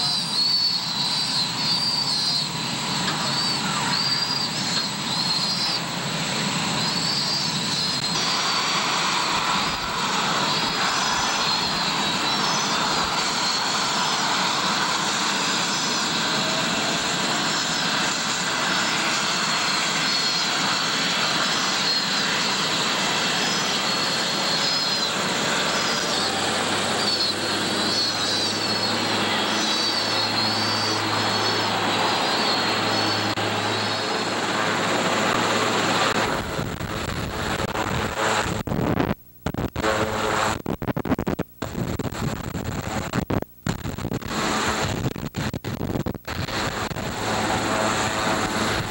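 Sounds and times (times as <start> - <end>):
helicopter turbine rush: 0.0 - 48.9.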